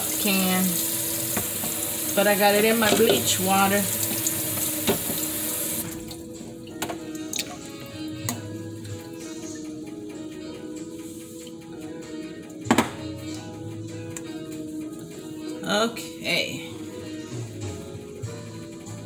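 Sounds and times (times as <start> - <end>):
music: 0.0 - 19.0
tap running into sink: 0.1 - 7.6, 12.7 - 13.1.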